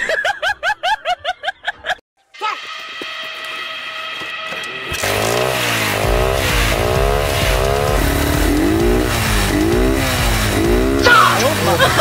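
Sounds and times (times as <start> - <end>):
motorcycle engine revving: 4.4 - 12.0.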